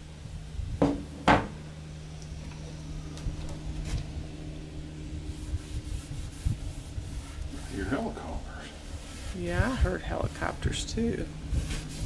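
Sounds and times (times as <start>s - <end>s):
steady low hum: 0.0s - 12.0s
cloth rag rubbing wood: 5.3s - 10.5s, 11.5s - 12.0s.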